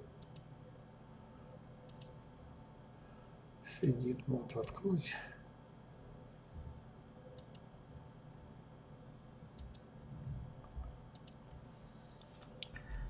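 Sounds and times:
low room hiss: 0.0s - 13.0s
computer mouse clicks: 0.2s - 0.5s, 1.9s - 2.2s, 7.4s - 7.7s, 9.6s - 9.9s, 10.6s - 11.6s.

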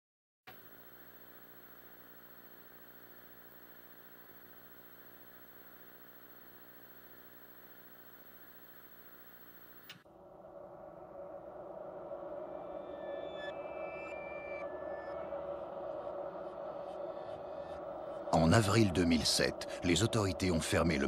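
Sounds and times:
electrical hum: 0.5s - 10.0s
thin high-pitched whine: 0.5s - 10.0s.

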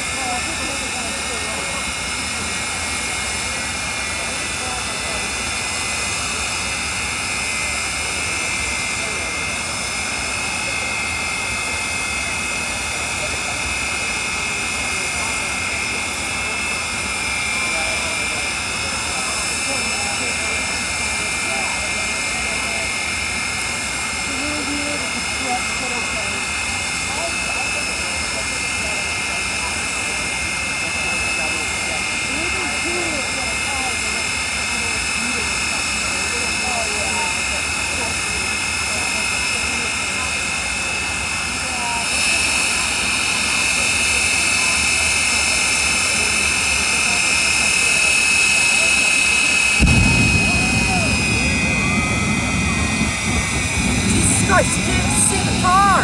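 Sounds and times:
crowd chatter: 0.0s - 56.0s
jet turbine whine: 0.0s - 56.0s
exhaust rush: 49.8s - 56.0s.

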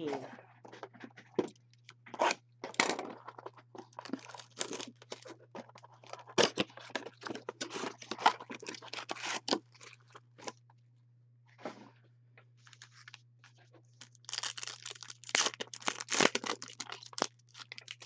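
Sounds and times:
foil packs crinkling: 3.3s - 10.0s, 14.0s - 18.0s.

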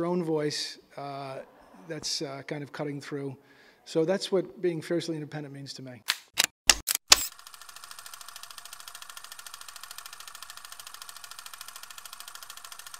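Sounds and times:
sharp mechanical clicks: 6.1s - 12.9s
fast mechanical clatter: 7.1s - 12.9s.

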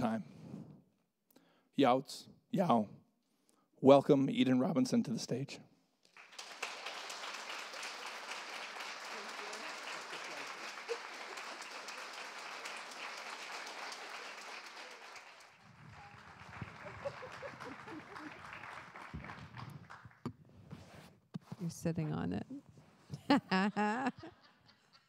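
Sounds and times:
audience applauding: 6.1s - 20.3s.

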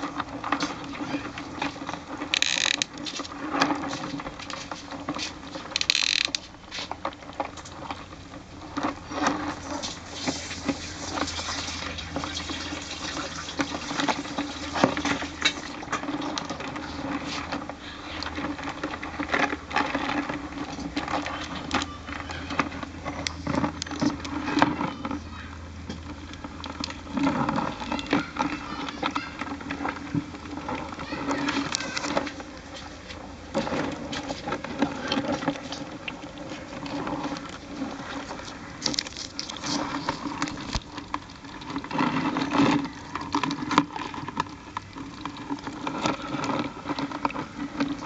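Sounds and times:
crabs scrabbling in plastic bucket: 0.0s - 48.0s.

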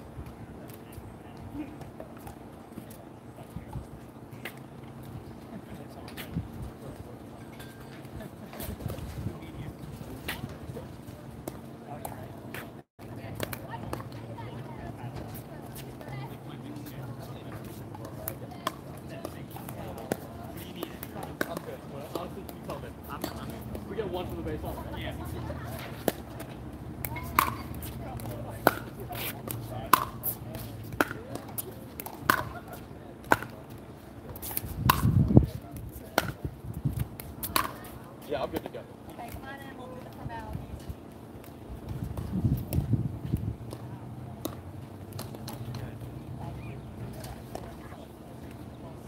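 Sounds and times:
paddles hitting plastic ball: 34.4s - 35.2s.

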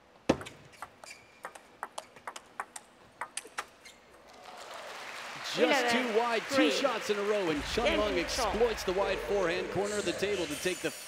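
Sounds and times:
table tennis ball hitting rackets: 0.3s - 3.8s.

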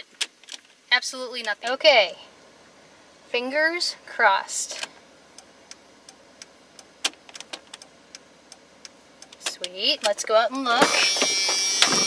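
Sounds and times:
turn-signal relay ticking: 4.6s - 12.0s.

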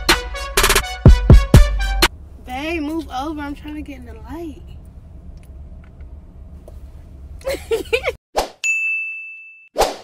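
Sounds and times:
bright ding chime: 8.6s - 9.8s.

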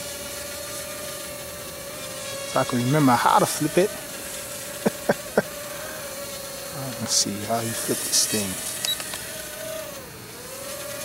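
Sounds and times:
quadcopter motors whining: 0.0s - 11.0s.

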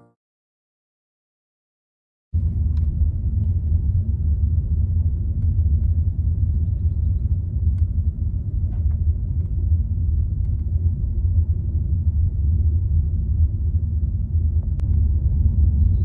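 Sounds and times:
car engine and tyre noise: 2.4s - 16.0s.

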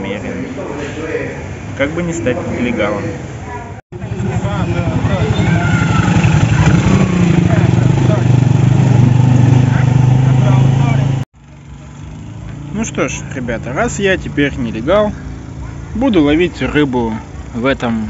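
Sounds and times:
motorcycle engine running: 3.9s - 18.0s.

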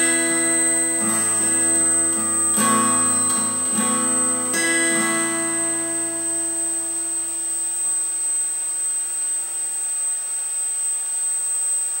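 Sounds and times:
acoustic guitar chord ringing: 0.0s - 9.4s
steady hiss: 0.0s - 12.0s
thin high whine: 0.0s - 12.0s.

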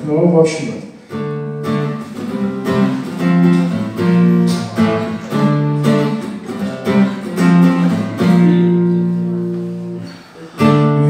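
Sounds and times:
acoustic guitar strumming chords: 1.0s - 11.0s.

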